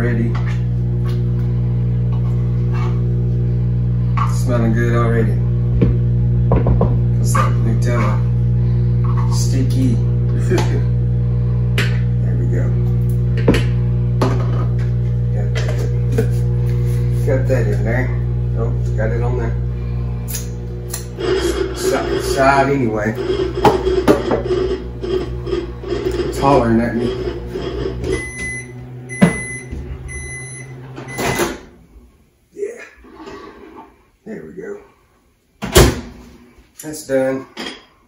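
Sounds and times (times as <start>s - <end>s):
steady low hum: 0.0s - 37.2s
microwave beeping: 27.5s - 31.8s.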